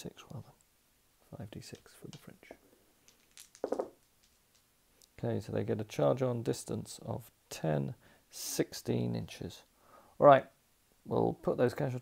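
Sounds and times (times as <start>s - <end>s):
dice clattering on cloth mat: 3.0s - 4.7s.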